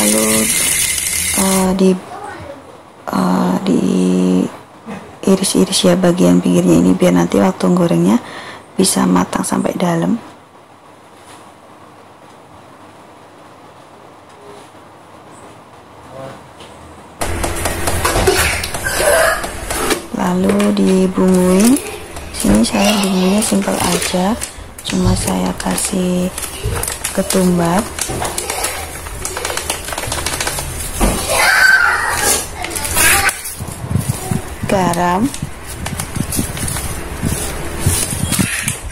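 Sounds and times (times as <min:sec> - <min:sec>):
loud noisy clatter: 0:00.0 - 0:01.9, 0:17.2 - 0:38.9
plastic bag crinkling: 0:00.0 - 0:01.9, 0:17.2 - 0:38.9.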